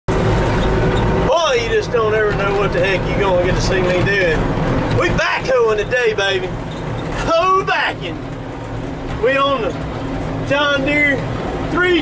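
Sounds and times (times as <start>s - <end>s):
diesel engine rumbling: 0.1s - 12.0s
man talking: 1.2s - 6.6s, 7.2s - 8.2s, 9.2s - 9.8s, 10.4s - 12.0s.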